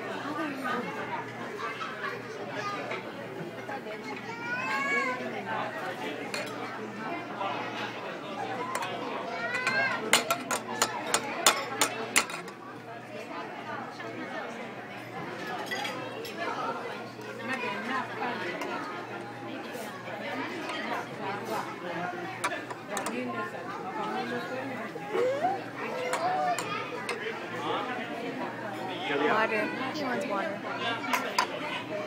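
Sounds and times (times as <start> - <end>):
murmur of diners' voices: 0.0 - 32.0
cutlery clinking on tableware: 6.3 - 6.6, 8.7 - 12.6, 15.4 - 16.4.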